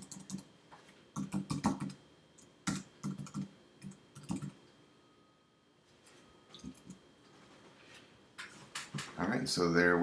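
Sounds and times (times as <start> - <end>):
typing on computer keyboard: 0.0 - 0.4, 1.2 - 2.0, 2.7 - 4.6.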